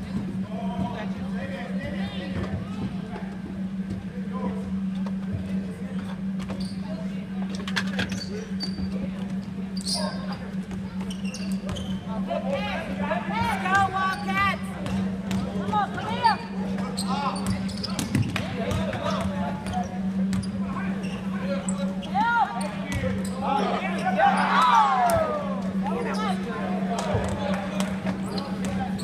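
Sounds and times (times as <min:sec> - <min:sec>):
sneaker squeaks: 0:06.4 - 0:07.2, 0:07.8 - 0:12.3, 0:14.0 - 0:24.7, 0:25.9 - 0:26.5, 0:28.0 - 0:29.0.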